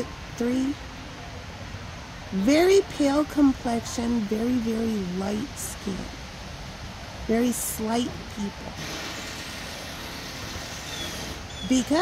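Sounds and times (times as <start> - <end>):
hiss: 8.8 - 11.6.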